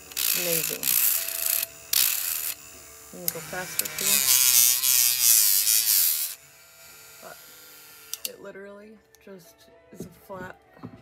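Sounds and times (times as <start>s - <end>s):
rotary tool grinding resin: 0.0s - 8.4s.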